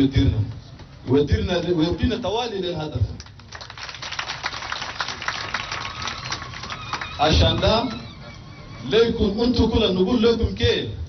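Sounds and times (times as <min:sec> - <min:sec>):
crowd applauding: 0:03.2 - 0:09.0.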